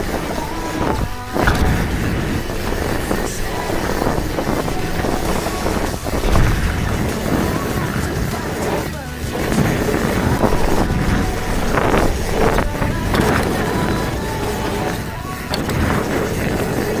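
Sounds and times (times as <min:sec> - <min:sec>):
bike knocking and rattling: 0:00.0 - 0:17.0
bike tyre rumble on dirt: 0:00.0 - 0:17.0.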